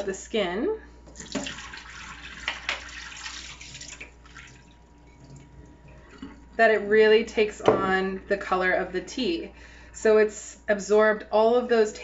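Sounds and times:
liquid pouring into metal sink: 0:01.1 - 0:05.8.

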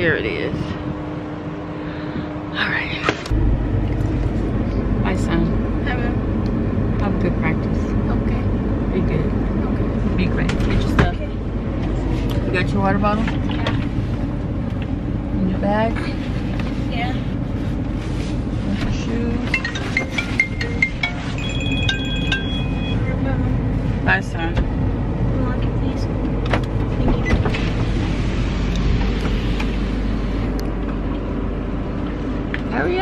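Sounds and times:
car engine rumble inside cabin: 0:00.0 - 0:33.0
long held high tones: 0:19.5 - 0:23.3
short high electronic tones: 0:19.8 - 0:23.2.

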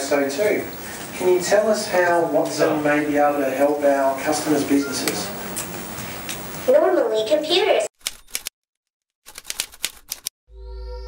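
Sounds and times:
typewriter key clicks: 0:08.0 - 0:08.5, 0:09.3 - 0:10.3.

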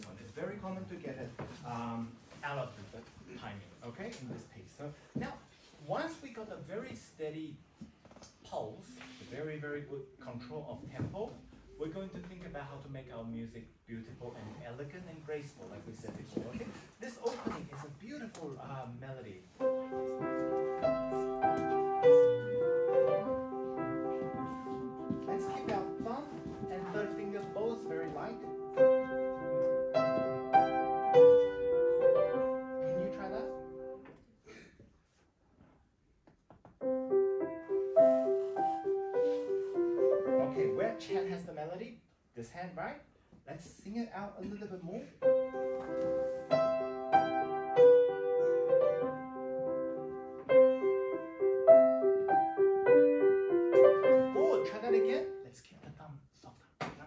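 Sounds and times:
grand piano playing classical piece: 0:19.4 - 0:34.0, 0:36.8 - 0:41.4, 0:45.2 - 0:55.4.

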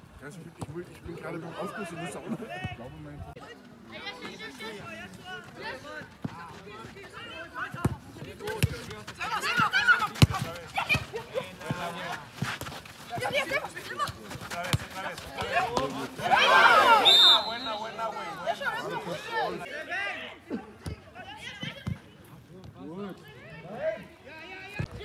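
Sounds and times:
people shouting: 0:09.2 - 0:11.2, 0:15.3 - 0:19.6.

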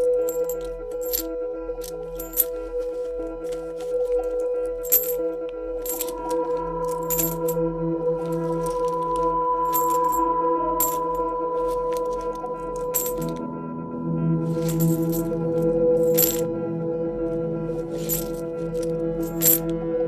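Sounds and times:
coins dropping clinks: 0:00.0 - 0:02.8, 0:03.4 - 0:07.6, 0:08.2 - 0:13.4, 0:14.5 - 0:16.5, 0:17.8 - 0:19.7
slow ambient music: 0:00.0 - 0:20.0.

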